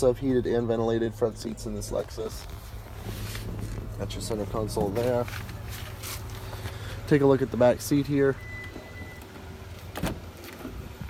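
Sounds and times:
low steady rumble: 0.0 - 11.0
car door latch click: 9.9 - 10.2.

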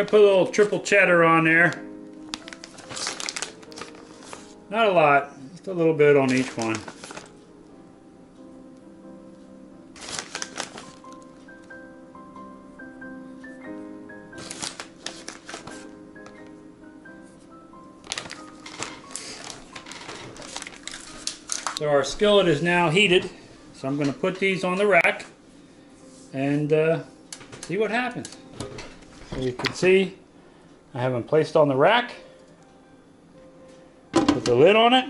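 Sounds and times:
faint background music: 0.0 - 35.0
plastic bag crinkling: 1.6 - 4.6, 6.2 - 7.3, 10.0 - 11.3, 14.4 - 15.9, 18.0 - 22.2
kitchen items clicking and clattering: 18.1 - 21.8.

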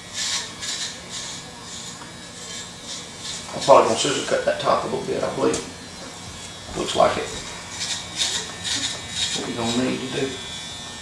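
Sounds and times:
electric hair clippers cutting hair: 0.0 - 11.0.

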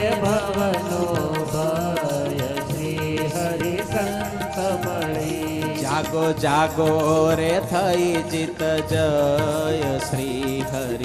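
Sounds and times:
harmonium: 0.0 - 11.0
tabla: 0.0 - 11.0.

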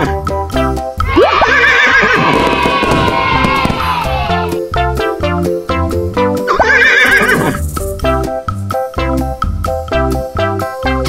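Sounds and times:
bouncy background music: 0.0 - 11.0
horse whinnying: 1.1 - 4.6, 6.5 - 7.6.

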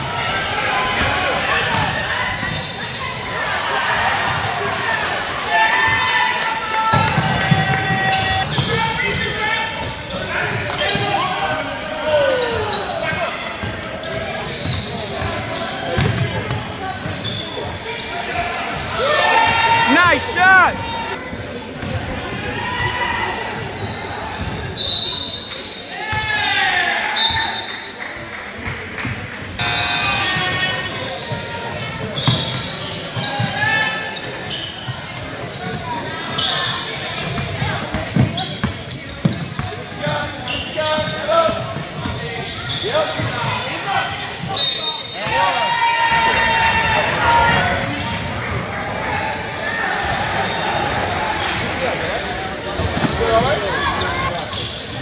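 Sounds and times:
sneakers squeaking: 0.8 - 6.1, 7.0 - 22.2, 23.5 - 25.7, 29.6 - 55.0
people calling out: 19.0 - 21.1.

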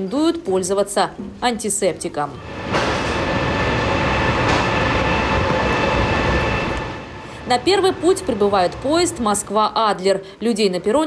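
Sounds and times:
high even whine: 2.4 - 9.6
electric locomotive rumble: 2.4 - 10.0.

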